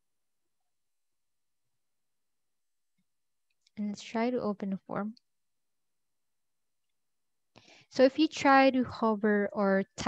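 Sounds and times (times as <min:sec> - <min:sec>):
person speaking: 0:03.7 - 0:05.2.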